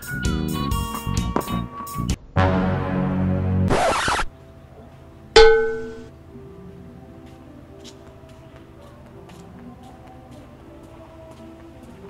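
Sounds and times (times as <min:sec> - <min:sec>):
bright plucked musical note: 0:05.4 - 0:06.1.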